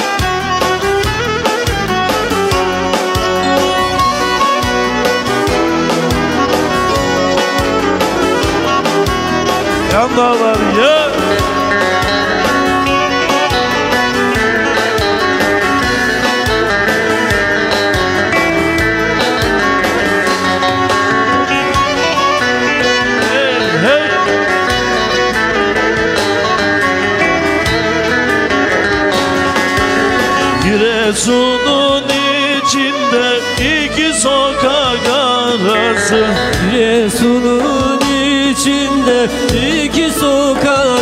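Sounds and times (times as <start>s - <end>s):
bowed fiddle playing: 0.0s - 40.5s
string accompaniment: 0.0s - 41.0s
person singing: 2.3s - 41.0s.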